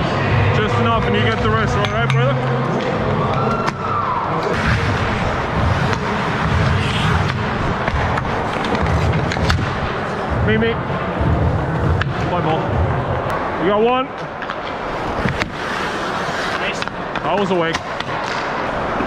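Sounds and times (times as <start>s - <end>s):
microphone rumbling: 4.5s - 13.3s
skate blades scraping ice: 4.6s - 9.7s, 14.5s - 19.0s
sticks and puck clicking: 7.2s - 9.7s.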